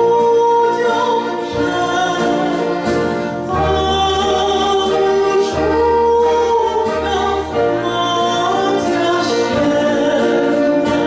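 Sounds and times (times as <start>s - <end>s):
low bass notes: 0.0s - 11.0s
musical accompaniment: 0.0s - 11.0s
woman singing classical style: 0.0s - 11.0s.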